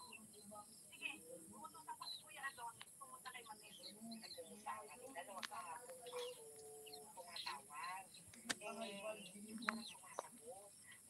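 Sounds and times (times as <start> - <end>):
faint voices: 0.0 - 11.0
high bird chirps: 0.0 - 11.0.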